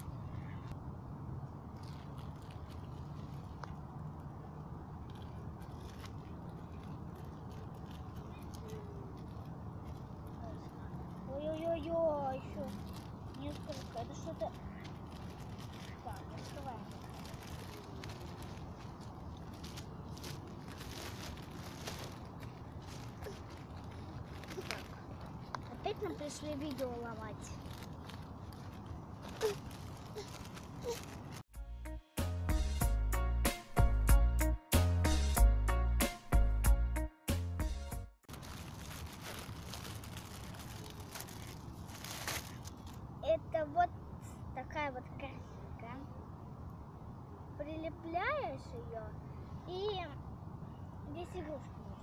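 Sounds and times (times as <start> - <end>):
plastic mailer crinkling: 12.4 - 31.4, 38.2 - 43.0.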